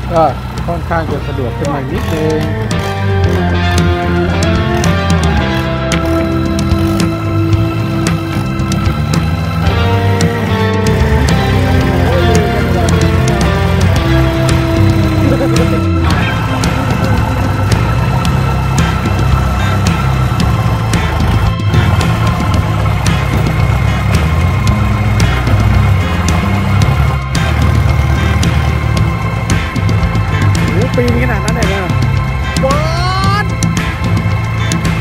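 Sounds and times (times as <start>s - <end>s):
background music with beat: 0.0s - 35.0s.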